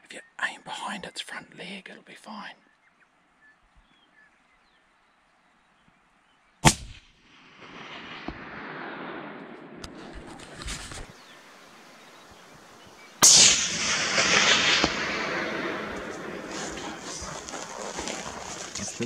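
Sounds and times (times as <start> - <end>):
rifle shot cracks: 6.6 - 11.5, 13.1 - 18.8
loud rolling echo: 7.3 - 10.3, 12.5 - 19.0.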